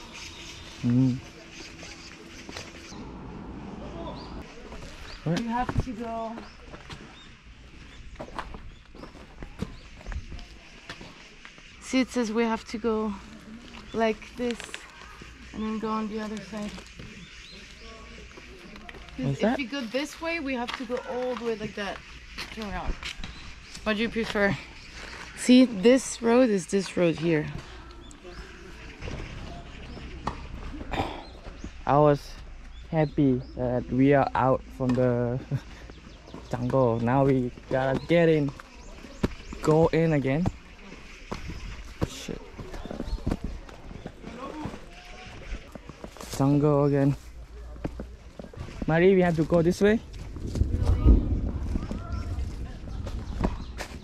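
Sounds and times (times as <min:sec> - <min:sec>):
low outdoor rumble: 0:00.0 - 0:04.7, 0:28.4 - 0:34.7, 0:49.7 - 0:54.0
footsteps on paved road: 0:00.1 - 0:54.0.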